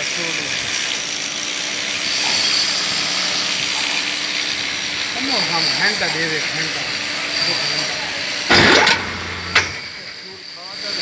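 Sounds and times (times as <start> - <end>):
electric hoist drive running: 0.0 - 11.0.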